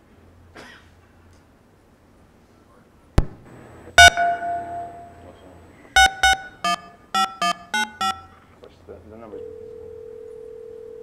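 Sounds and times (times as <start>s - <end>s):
short keypad beeps: 4.0s - 5.2s, 6.0s - 8.4s
telephone ringing tone: 6.0s - 8.4s, 9.4s - 11.0s.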